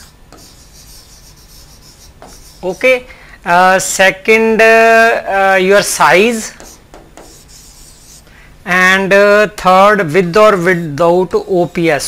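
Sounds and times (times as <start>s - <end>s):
stylus rubbing on glass screen: 0.0s - 3.0s, 6.5s - 8.2s, 11.5s - 12.0s.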